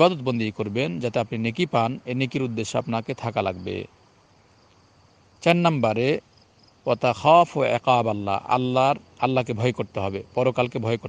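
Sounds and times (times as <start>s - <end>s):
man speaking: 0.0s - 3.9s, 5.4s - 11.0s.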